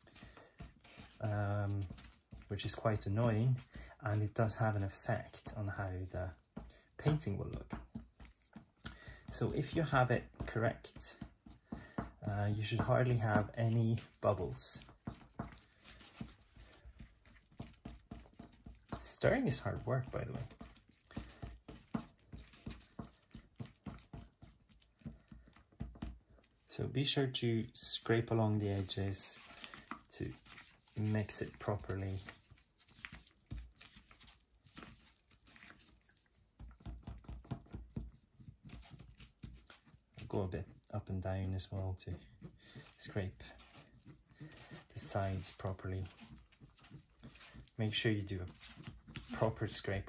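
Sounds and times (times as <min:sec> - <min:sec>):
stick stirring paint in plastic cup: 0:00.0 - 0:50.0
stick scraping paint in cup: 0:27.6 - 0:40.9.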